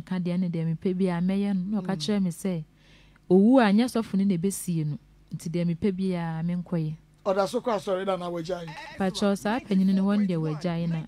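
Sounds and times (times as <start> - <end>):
person talking: 7.3 - 11.0.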